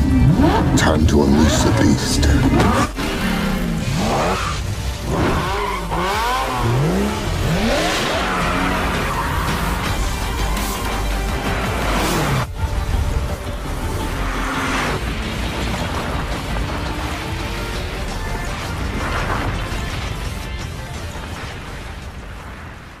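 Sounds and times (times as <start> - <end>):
car engines: 0.0 - 23.0
cinematic trailer music: 0.0 - 23.0
impact and boom effects: 14.7 - 23.0.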